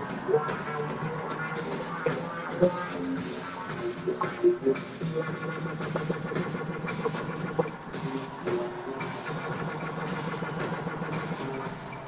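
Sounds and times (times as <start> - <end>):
low synthesizer drone: 0.0 - 12.0
repeating high synth notes: 0.0 - 12.0.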